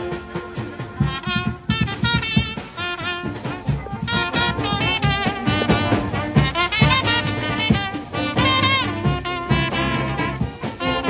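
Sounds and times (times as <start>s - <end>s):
bass drum and snare beat: 0.0s - 11.0s
military brass band playing: 0.0s - 11.0s
saxophone: 0.0s - 11.0s
trumpets: 0.0s - 11.0s.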